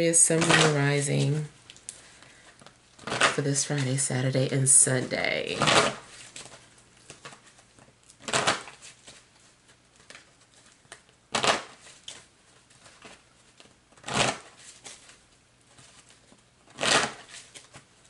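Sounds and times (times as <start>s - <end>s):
cards being shuffled: 5.6s - 18.0s.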